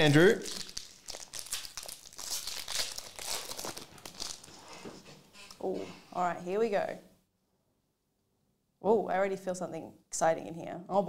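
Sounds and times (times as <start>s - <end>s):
foil wrapper crinkling: 0.0s - 4.8s.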